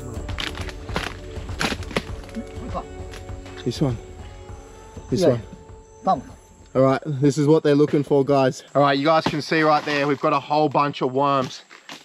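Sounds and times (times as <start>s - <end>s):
background music: 0.0s - 9.2s
machete chopping into log: 0.3s - 2.4s.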